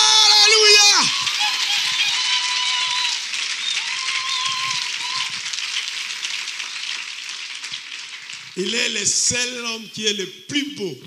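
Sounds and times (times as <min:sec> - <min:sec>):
people cheering: 0:00.0 - 0:09.9
congregation clapping: 0:00.0 - 0:11.0.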